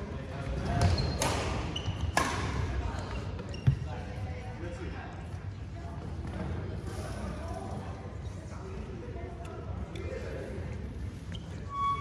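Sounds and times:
short high squeak: 11.3s - 12.0s.

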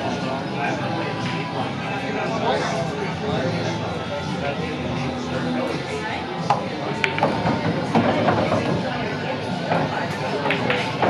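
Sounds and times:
music playing: 0.0s - 11.0s
people talking: 0.0s - 11.0s.

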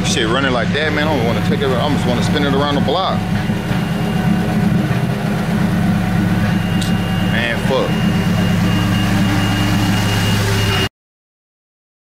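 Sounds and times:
car engine idling rough: 0.0s - 10.9s.

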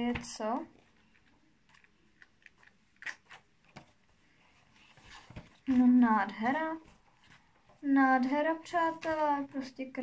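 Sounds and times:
magazine pages flipping: 0.1s - 6.0s, 8.6s - 9.6s.

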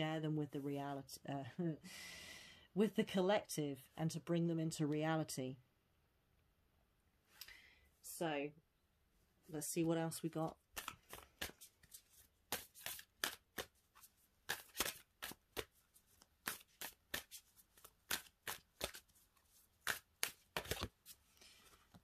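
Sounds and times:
cards being shuffled: 10.5s - 22.0s.

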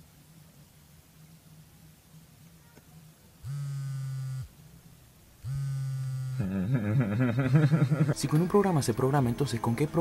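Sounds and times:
vibration motor buzzing: 3.4s - 4.5s, 5.4s - 6.6s.

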